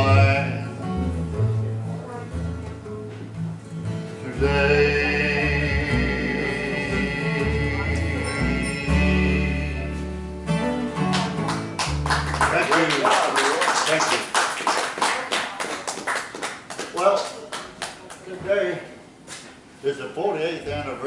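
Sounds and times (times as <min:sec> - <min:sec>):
acoustic guitar: 0:00.0 - 0:12.6
upright bass: 0:00.0 - 0:12.8
audience clapping: 0:11.0 - 0:18.3.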